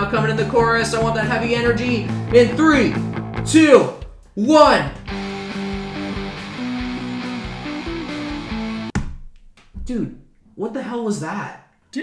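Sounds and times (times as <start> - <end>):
electric bass octave riff: 0.0 - 3.6, 5.0 - 8.9
punk rock band playing: 0.0 - 4.2, 5.0 - 9.0.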